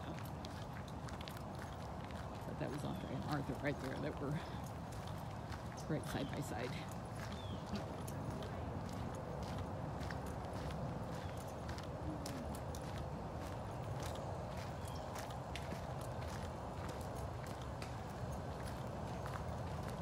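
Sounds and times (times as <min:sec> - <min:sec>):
footsteps crunching on gravel: 0:00.0 - 0:20.0.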